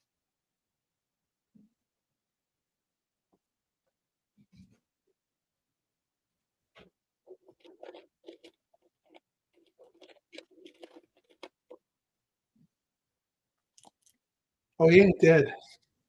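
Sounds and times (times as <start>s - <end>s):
soft clicks and crunches: 6.7s - 11.9s, 13.6s - 14.3s
man's voice: 14.8s - 15.6s.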